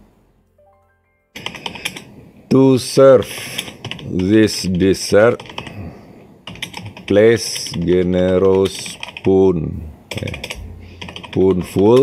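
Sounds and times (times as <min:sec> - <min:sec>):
computer keyboard typing: 0:01.4 - 0:02.1, 0:03.4 - 0:05.8, 0:06.4 - 0:09.4, 0:10.1 - 0:12.0.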